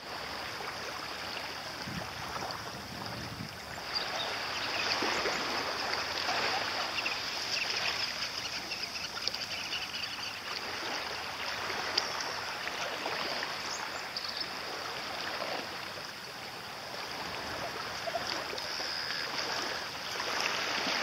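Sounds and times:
small waves lapping: 0.0s - 21.0s.

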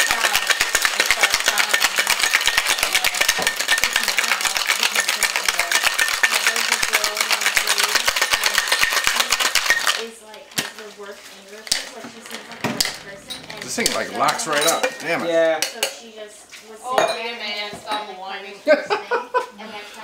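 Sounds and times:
ice rattling in cocktail shaker: 0.0s - 10.8s, 11.6s - 15.1s.

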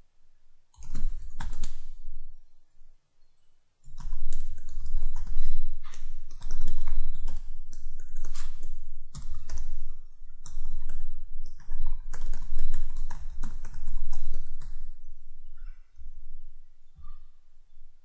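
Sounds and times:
computer keyboard typing: 0.8s - 2.0s, 3.9s - 14.9s.

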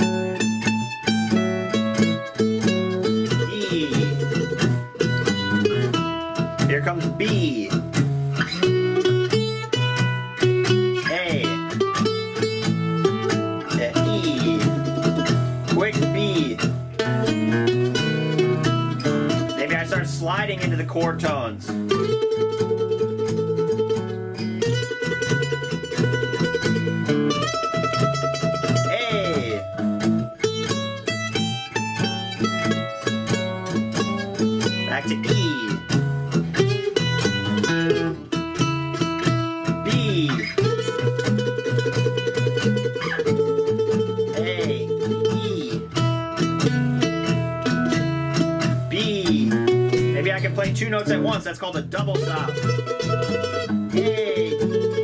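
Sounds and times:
blues backing track: 0.0s - 55.0s
mandolin blues solo: 0.0s - 55.0s.

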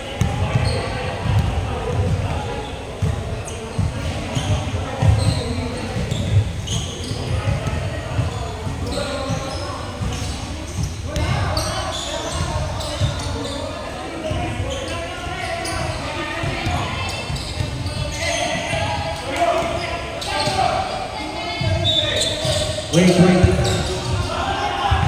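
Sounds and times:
players' voices: 0.0s - 25.0s
sneakers squeaking: 0.0s - 25.0s.

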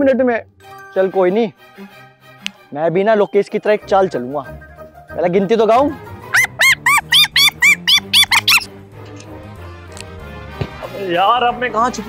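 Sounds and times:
background music: 0.0s - 12.0s
high squeaky chirps: 6.3s - 8.7s.

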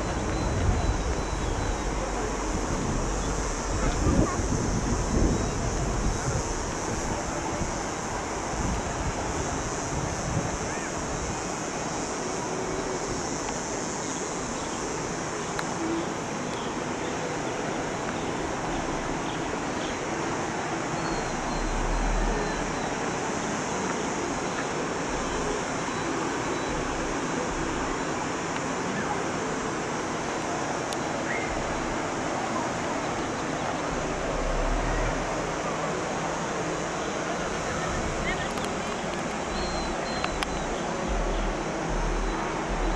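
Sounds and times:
wind buffeting microphone: 0.0s - 15.0s, 31.4s - 42.9s
steady outdoor rushing noise: 0.0s - 42.9s.

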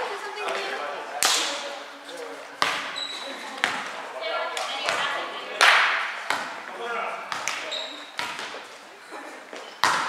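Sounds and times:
volleyball slaps echoing in gym: 0.4s - 1.8s, 2.5s - 8.8s, 9.5s - 10.0s.

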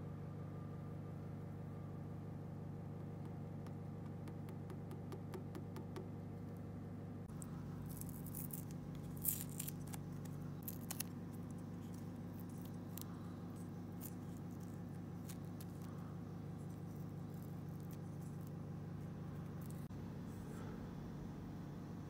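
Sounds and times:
low hum: 0.0s - 22.0s
masking tape peeling and crumpling: 7.3s - 16.0s.

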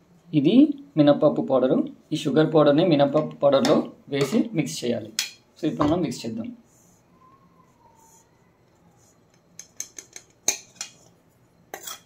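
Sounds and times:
metal pan scraping on steel plate: 11.7s - 12.0s.

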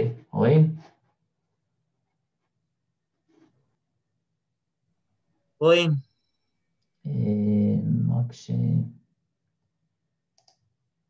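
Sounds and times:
faint clicks: 10.4s - 10.7s.

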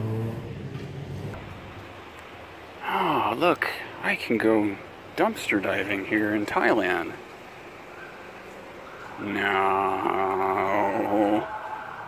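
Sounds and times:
street hum: 0.0s - 12.0s
man's long low nah: 9.2s - 11.5s.

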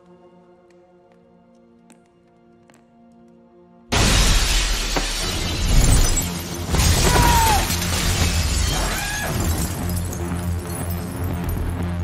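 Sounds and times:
dramatic film score: 0.0s - 12.0s
body crashing through table: 3.9s - 9.8s
glass shards scattering: 3.9s - 11.8s
glass shattering: 3.9s - 11.9s.

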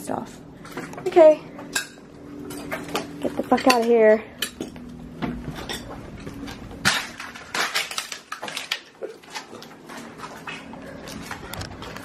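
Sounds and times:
footsteps crunching broken glass: 5.5s - 12.0s.

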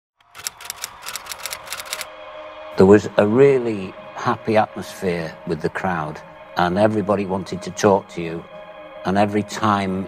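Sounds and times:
typewriter keys clacking: 0.2s - 2.1s.

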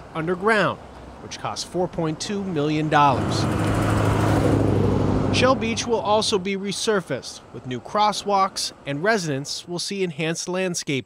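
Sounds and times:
car engine hum: 0.0s - 9.1s
tyre noise on asphalt: 2.6s - 6.4s.

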